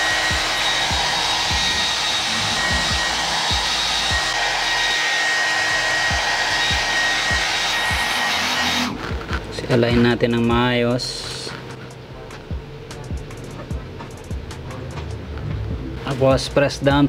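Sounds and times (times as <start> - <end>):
hair dryer blowing: 0.0 - 9.8.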